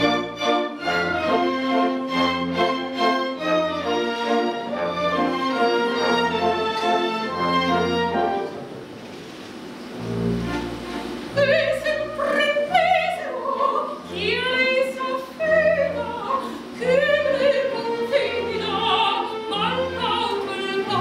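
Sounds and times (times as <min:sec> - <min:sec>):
string orchestra playing: 0:00.0 - 0:09.0, 0:09.8 - 0:21.0
operatic soprano singing: 0:11.4 - 0:21.0.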